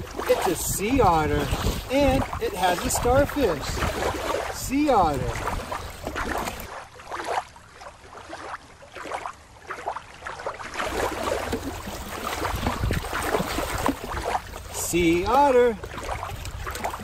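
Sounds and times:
wind on microphone: 0.0s - 6.7s, 10.9s - 17.0s
water lapping on rocky shore: 0.0s - 17.0s
water splashing: 0.0s - 17.0s.

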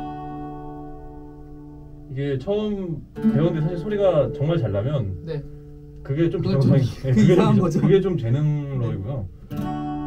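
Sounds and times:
acoustic guitar chord ringing: 0.0s - 10.0s.

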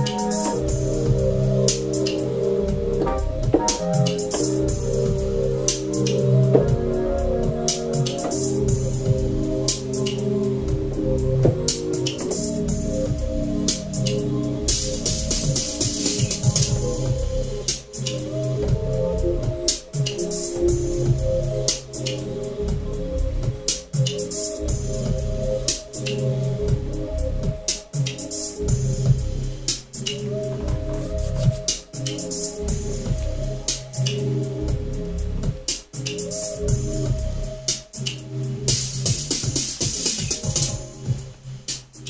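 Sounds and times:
electronic beat with synth: 0.0s - 42.0s.

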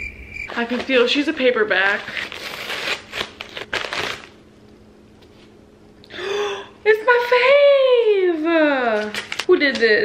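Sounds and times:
paper mailer crinkling and rustling: 0.5s - 4.4s, 8.8s - 10.0s.

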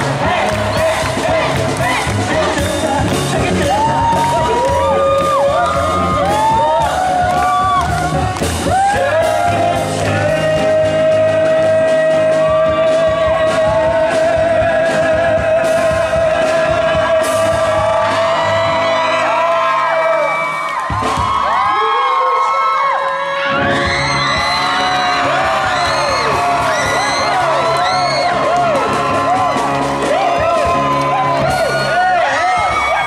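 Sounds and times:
people singing into microphones: 0.0s - 7.7s, 8.6s - 20.0s, 23.4s - 33.0s
live pop band playing: 0.0s - 21.6s, 23.3s - 33.0s
crowd screaming and whooping: 0.0s - 33.0s.

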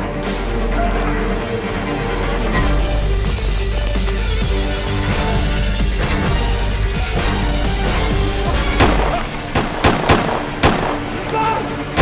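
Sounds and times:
music: 0.0s - 12.0s
gunshots: 8.6s - 11.3s.

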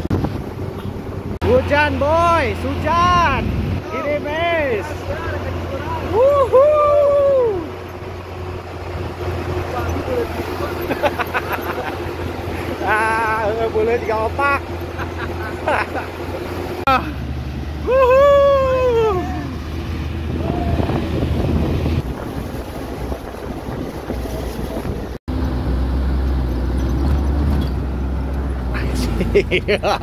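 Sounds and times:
wind noise: 0.0s - 1.4s, 2.5s - 5.1s, 18.3s - 25.2s
jeep engine running: 0.0s - 30.0s
person shouting: 6.0s - 7.7s, 17.8s - 19.6s, 20.3s - 21.0s.

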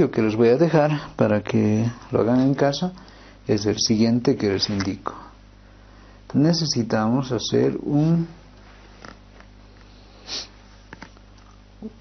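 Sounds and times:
steady low hum: 0.0s - 12.0s
person sniffing: 9.9s - 10.6s.

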